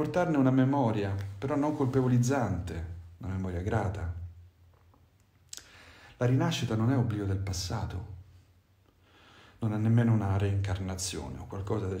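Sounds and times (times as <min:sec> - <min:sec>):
man speaking: 0:00.0 - 0:04.4, 0:06.2 - 0:08.2, 0:09.6 - 0:12.0.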